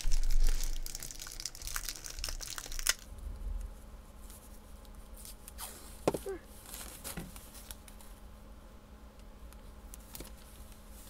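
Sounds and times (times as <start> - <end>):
masking tape unrolling crackles: 0.0 - 3.1.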